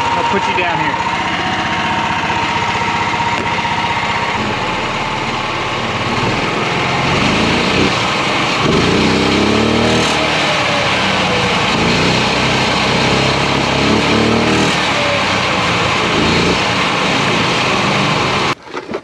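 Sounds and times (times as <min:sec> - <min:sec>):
engine revving: 0:00.0 - 0:18.6
small engine running under load: 0:00.0 - 0:18.6.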